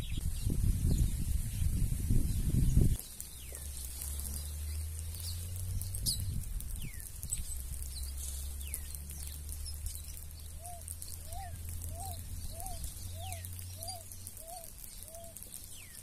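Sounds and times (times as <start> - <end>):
small birds chirping: 0.0 - 16.0
low repeating bird call: 3.5 - 16.0.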